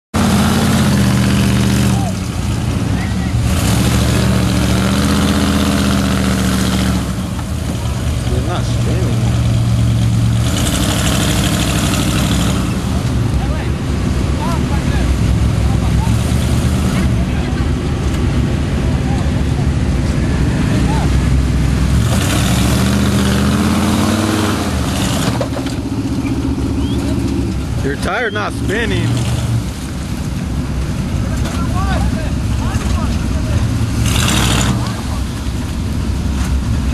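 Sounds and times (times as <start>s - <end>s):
truck engine revving hard: 0.2s - 36.9s.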